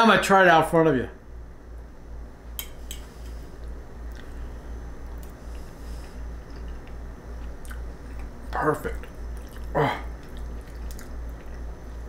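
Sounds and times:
steady low hum: 0.0 - 12.0
person chewing food: 3.6 - 12.0.

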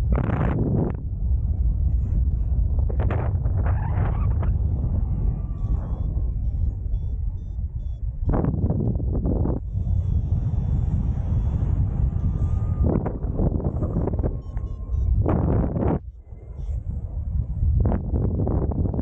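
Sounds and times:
wind buffeting microphone: 0.0 - 19.0
faint short high beeps: 5.4 - 8.4, 13.7 - 15.5.

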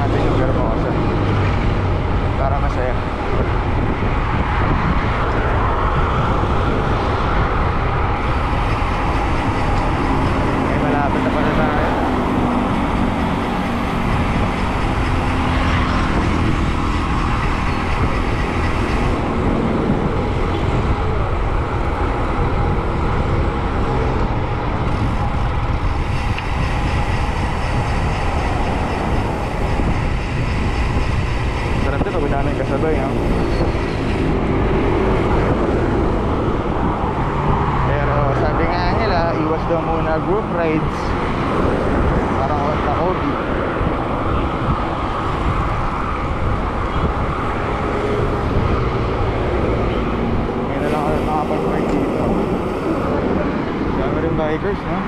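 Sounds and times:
bike tyre and road noise: 0.0 - 55.0
wind rush on microphone: 0.0 - 55.0.

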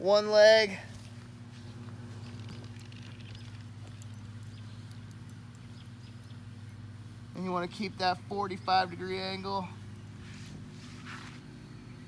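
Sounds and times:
low machine hum: 0.0 - 12.0
faint ticks and rustles: 0.9 - 6.4.

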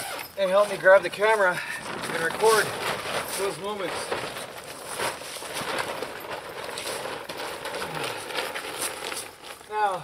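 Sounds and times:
tent fabric rustling and flapping: 0.0 - 10.0.

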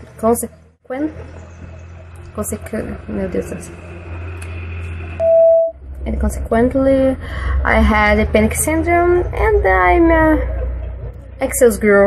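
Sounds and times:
low hum: 0.0 - 12.0
electronic beep: 5.2 - 5.8.

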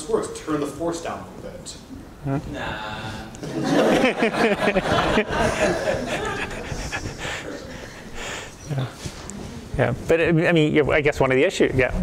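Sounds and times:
people chuckling: 3.4 - 8.6.

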